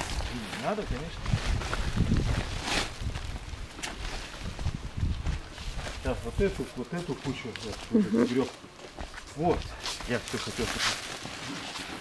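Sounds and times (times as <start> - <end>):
wind buffeting microphone: 0.8 - 6.6.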